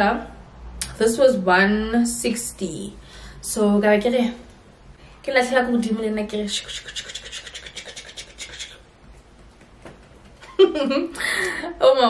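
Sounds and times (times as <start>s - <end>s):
woman speaking: 0.0s - 4.5s, 5.2s - 8.7s, 11.7s - 12.0s.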